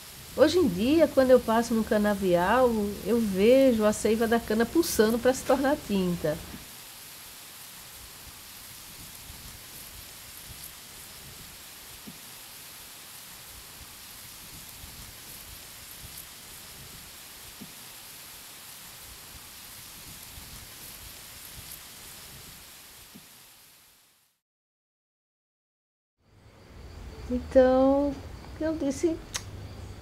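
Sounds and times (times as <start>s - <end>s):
rain-like hiss: 0.0s - 24.4s, 26.2s - 30.0s
faint ticks and crackles: 0.1s - 23.5s.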